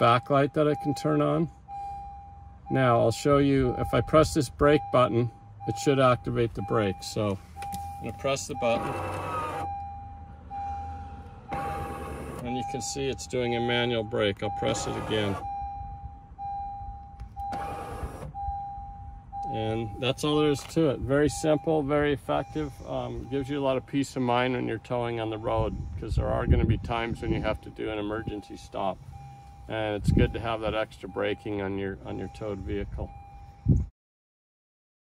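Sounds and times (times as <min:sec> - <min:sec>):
faint steady tone: 0:00.0 - 0:09.0, 0:27.1 - 0:33.8
mid-pitched beep tone: 0:00.1 - 0:03.0, 0:09.6 - 0:11.1, 0:12.6 - 0:17.7, 0:18.4 - 0:20.6, 0:21.2 - 0:23.6, 0:27.1 - 0:33.9.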